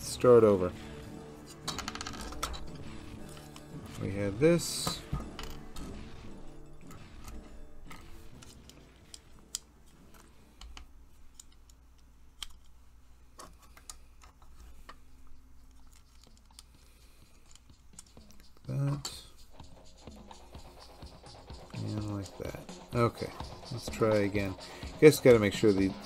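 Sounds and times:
small plastic parts clicking: 6.9s - 12.8s, 15.6s - 19.2s.

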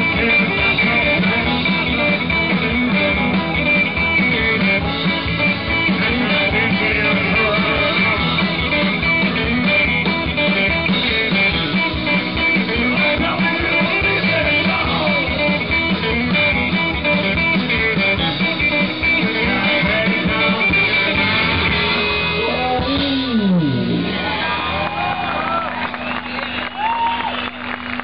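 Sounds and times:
strummed acoustic guitar: 0.0s - 24.4s
drums: 0.0s - 28.0s
electric guitar: 0.0s - 28.0s
live rock band playing: 0.0s - 28.0s.

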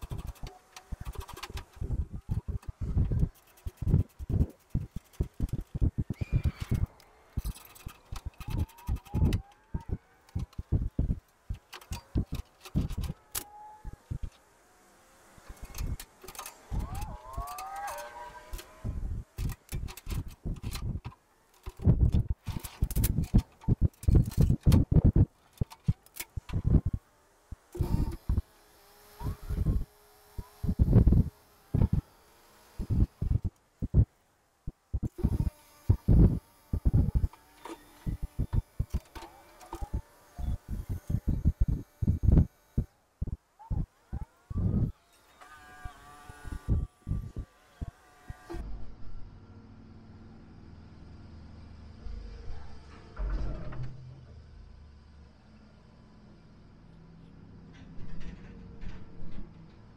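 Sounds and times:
wind buffeting microphone: 0.0s - 13.2s, 18.8s - 28.4s, 29.2s - 32.1s, 32.8s - 34.1s, 34.7s - 37.4s, 39.8s - 45.0s, 46.3s - 48.6s
tractor engine running: 0.0s - 13.4s.

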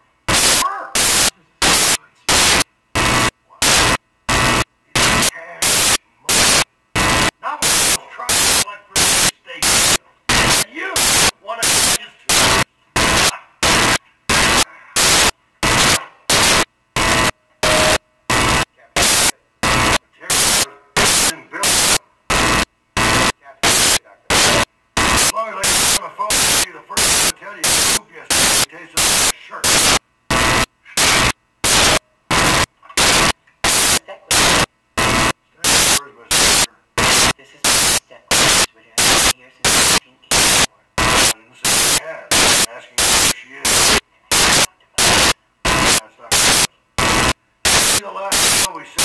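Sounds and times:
loud bursts of static: 0.0s - 49.0s
speech: 0.6s - 2.3s, 5.2s - 6.5s, 7.4s - 12.4s, 18.7s - 22.1s, 23.4s - 24.6s, 25.3s - 29.8s, 35.5s - 43.9s, 45.9s - 46.4s, 47.9s - 49.0s.

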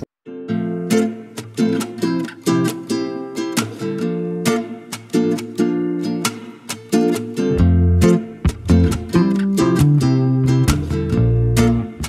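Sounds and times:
acoustic guitar picking melody: 0.0s - 12.0s
bass part: 7.6s - 12.0s.

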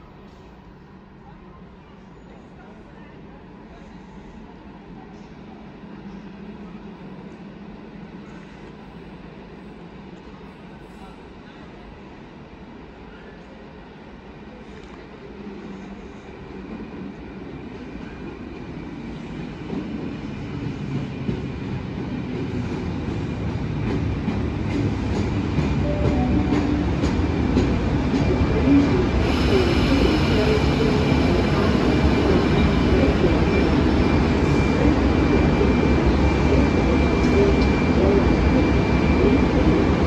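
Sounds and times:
train rumble: 13.8s - 40.0s.

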